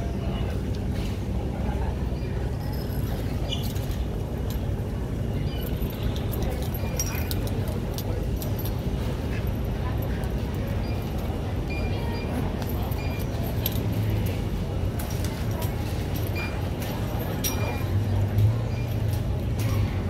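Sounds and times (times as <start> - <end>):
faint background voices: 0.0 - 20.0.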